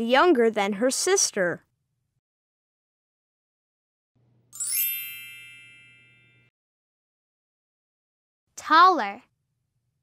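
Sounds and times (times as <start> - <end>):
bell-like chime: 4.5 - 6.5.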